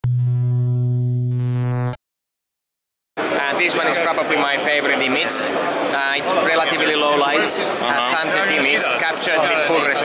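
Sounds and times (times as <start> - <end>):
low synthesizer tone: 0.0 - 2.0.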